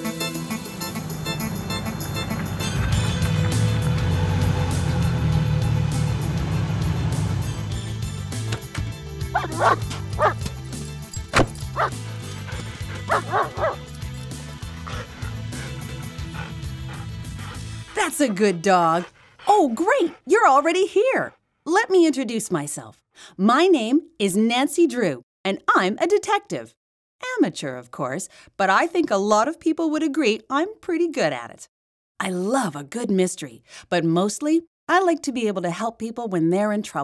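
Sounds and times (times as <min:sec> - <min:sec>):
dog barking: 0:09.3 - 0:10.4, 0:11.7 - 0:12.0, 0:12.9 - 0:13.8.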